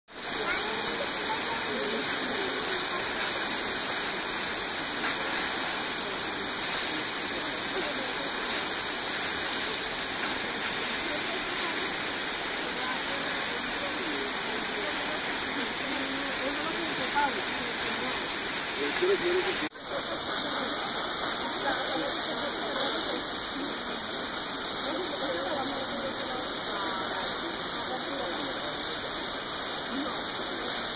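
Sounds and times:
waterfall rushing: 0:00.1 - 0:30.9.

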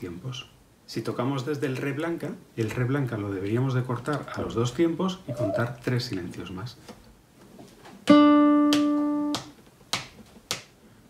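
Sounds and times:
sharp metronome clicks: 0:08.6 - 0:09.5.

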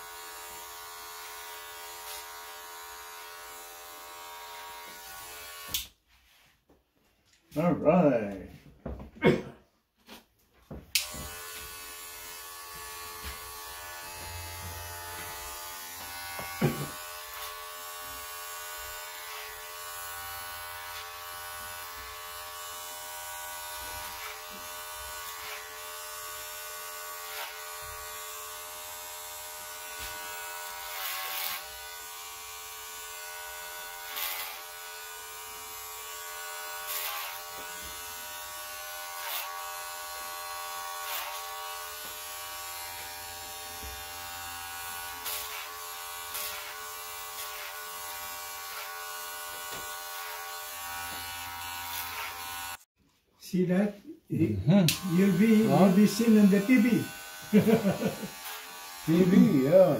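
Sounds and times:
hair clippers buzzing: 0:00.0 - 0:06.0, 0:10.9 - 0:52.9, 0:54.4 - 0:59.9.

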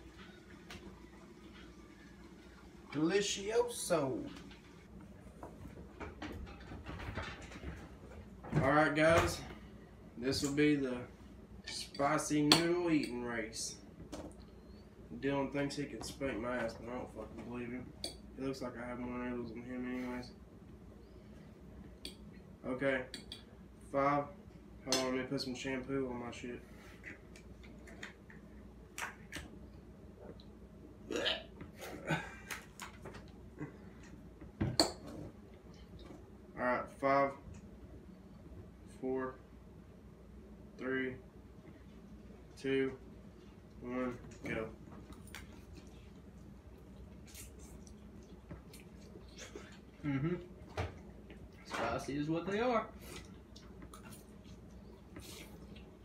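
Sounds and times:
low room rumble: 0:00.0 - 0:56.0.

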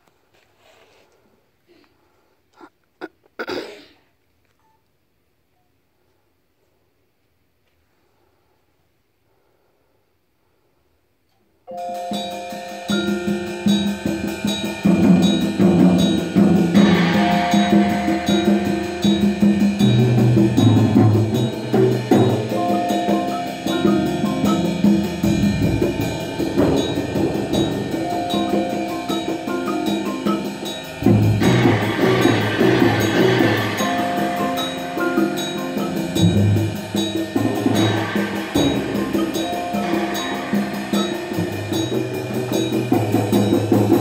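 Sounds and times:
marimbas and vibraphones playing: 0:11.7 - 0:44.0
low mallet notes: 0:22.2 - 0:42.8.

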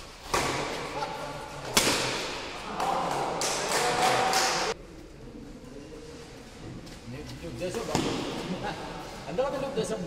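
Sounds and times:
racket striking shuttlecock: 0:01.7 - 0:02.6.

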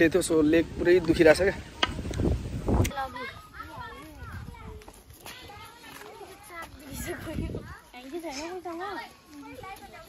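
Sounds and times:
children chattering quietly: 0:00.9 - 0:10.0.

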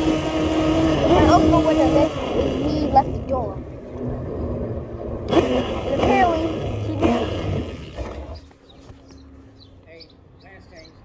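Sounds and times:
loud rushing rumbling noise: 0:00.0 - 0:08.0
unclear voices: 0:00.7 - 0:03.7, 0:05.3 - 0:07.9.

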